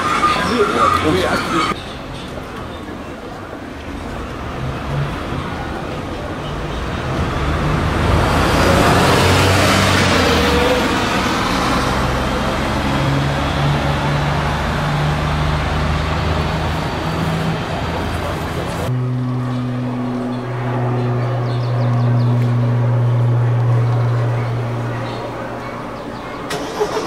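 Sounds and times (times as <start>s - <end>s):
road traffic hum: 0.0s - 27.0s
vehicle passing: 3.8s - 27.0s.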